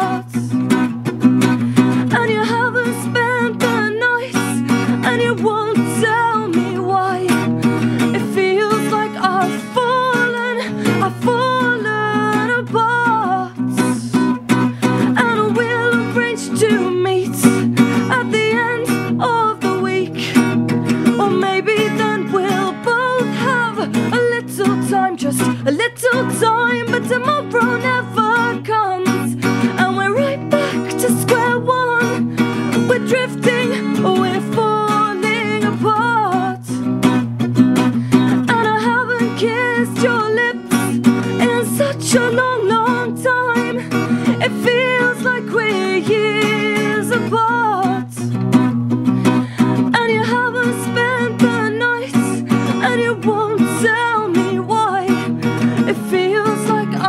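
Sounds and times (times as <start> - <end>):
strummed acoustic guitar: 0.0 - 57.0
woman singing: 0.0 - 57.0.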